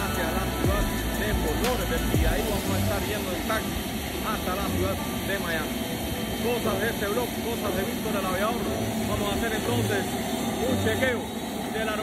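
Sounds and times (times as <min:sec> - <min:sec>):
jet engines whining: 0:00.0 - 0:12.0
man speaking: 0:00.0 - 0:12.0.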